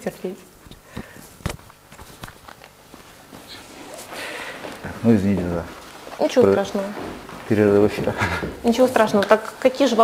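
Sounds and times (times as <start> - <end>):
clothing rustle: 1.3 - 8.1.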